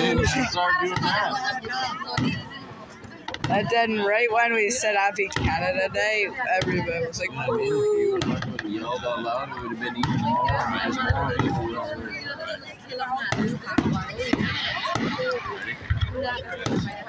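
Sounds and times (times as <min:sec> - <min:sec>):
crowd talking: 0:00.0 - 0:17.0
fireworks bangs: 0:08.2 - 0:08.7, 0:10.0 - 0:11.7, 0:13.3 - 0:17.0.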